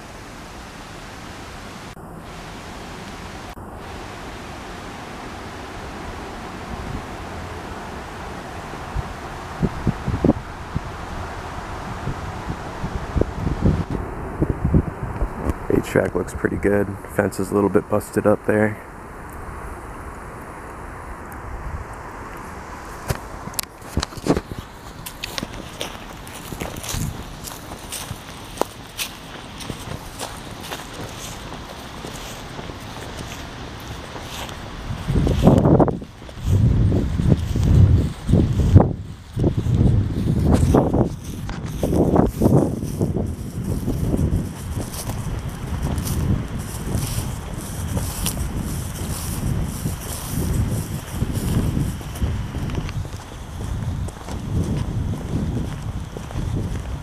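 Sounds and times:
wind rumbling on microphone: 0.0s - 57.0s
footsteps through grass: 22.4s - 57.0s.

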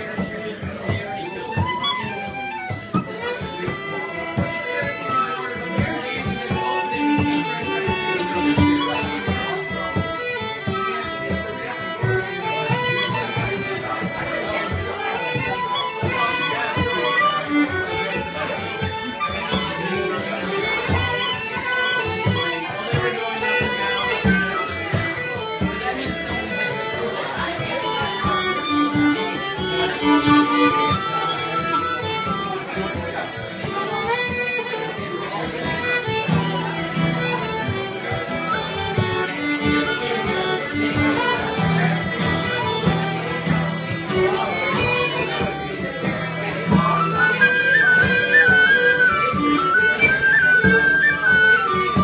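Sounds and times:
fiddle playing a tune: 0.0s - 52.0s.

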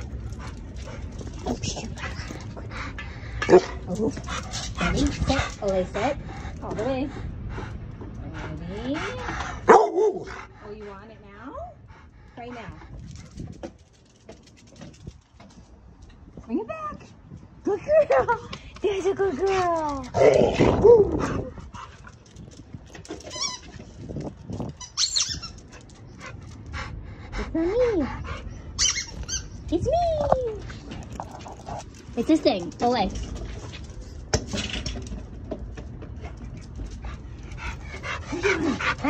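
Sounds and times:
dog panting: 0.0s - 13.6s, 25.6s - 29.4s, 36.1s - 39.0s.

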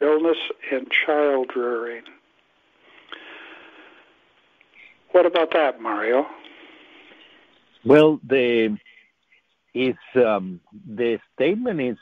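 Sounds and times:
person drawing a breath: 2.8s - 4.2s.

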